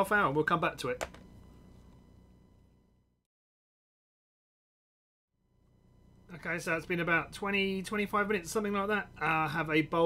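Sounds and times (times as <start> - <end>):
thin electrical whine: 0.0 - 3.2, 5.4 - 10.0.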